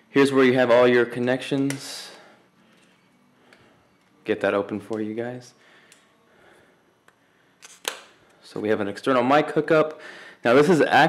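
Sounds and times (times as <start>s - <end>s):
sharp clicks of rubber cover: 7.6s - 8.2s.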